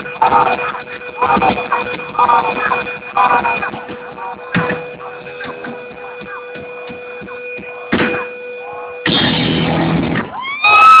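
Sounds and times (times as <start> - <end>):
amplifier hum: 0.0 - 10.4
sliding pitched tone: 0.0 - 10.9
loud noise burst: 0.0 - 11.0
crowd shouting: 10.2 - 11.0.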